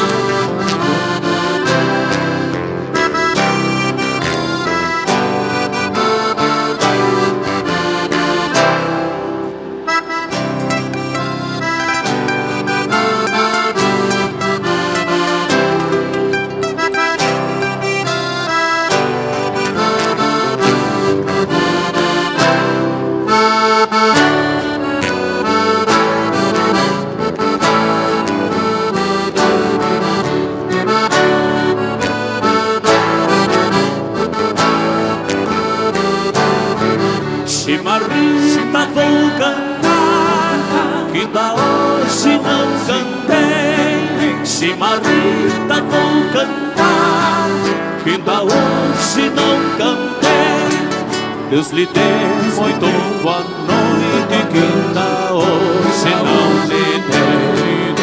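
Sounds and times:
folk dance music with accordion: 0:00.0 - 0:58.0.

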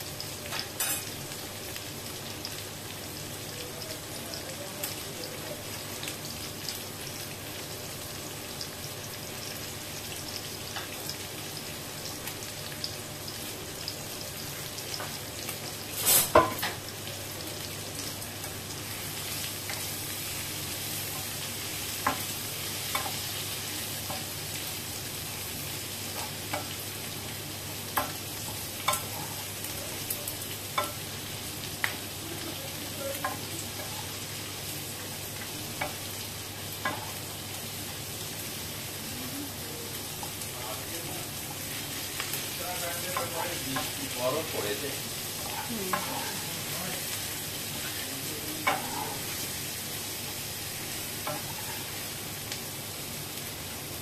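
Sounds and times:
food sizzling in a pan: 0:00.0 - 0:54.0.

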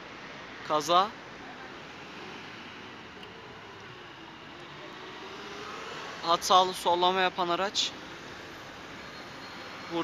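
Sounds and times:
cars passing slowly: 0:00.0 - 0:10.0.

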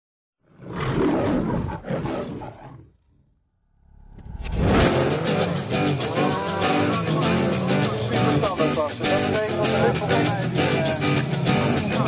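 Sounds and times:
rough noisy intro effect: 0:03.5 - 0:07.0
music with fast beat: 0:04.8 - 0:12.0.

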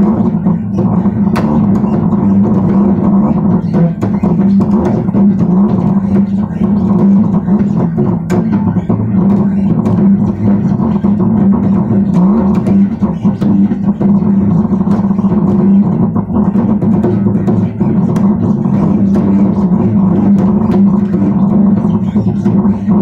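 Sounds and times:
bass guitar low notes: 0:00.0 - 0:23.0.

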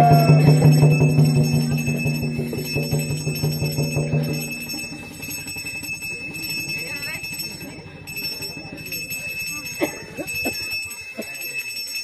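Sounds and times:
low sustained tone: 0:00.0 - 0:09.7
fast regular drum beats: 0:00.0 - 0:10.9
bells ringing: 0:00.0 - 0:12.0.

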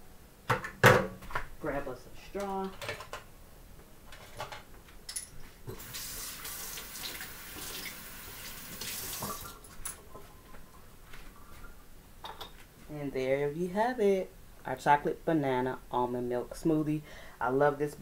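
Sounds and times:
water running from tap: 0:05.7 - 0:09.7.

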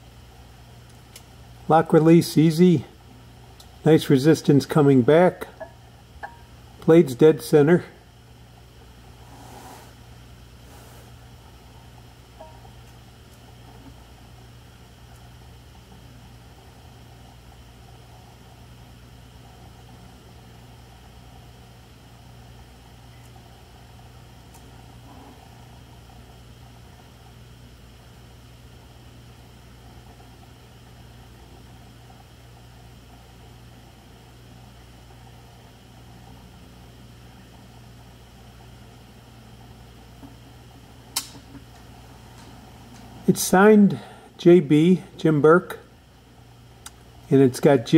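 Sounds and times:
low electrical hum: 0:00.0 - 0:47.9.

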